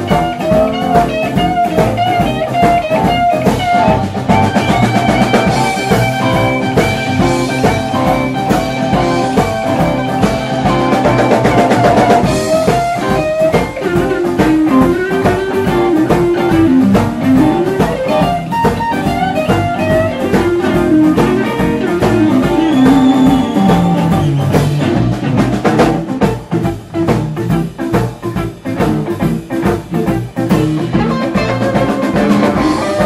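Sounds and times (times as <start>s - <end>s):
bass guitar: 0.0s - 33.0s
drum kit: 0.0s - 33.0s
electric guitar lead: 0.0s - 33.0s.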